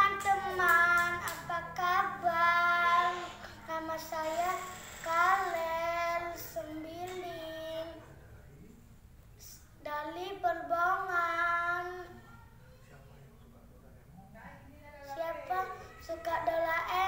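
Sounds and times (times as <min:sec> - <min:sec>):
boy singing: 0:00.0 - 0:08.0.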